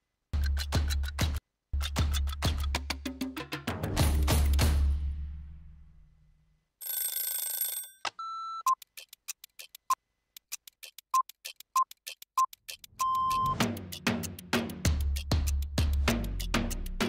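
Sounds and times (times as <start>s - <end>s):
rapid sharp clock ticks: 0.4s - 2.8s, 8.7s - 17.0s
music: 0.4s - 6.1s, 12.8s - 17.0s
beeps: 11.1s - 13.6s.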